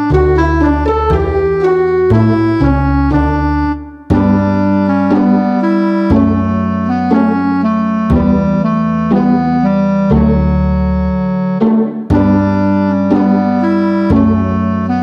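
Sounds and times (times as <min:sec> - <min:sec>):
organ-like keyboard chords: 0:00.0 - 0:15.0.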